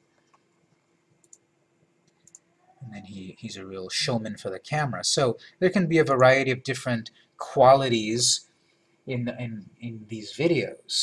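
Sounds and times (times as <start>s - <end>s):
computer mouse clicks: 1.2s - 1.4s, 2.0s - 2.5s.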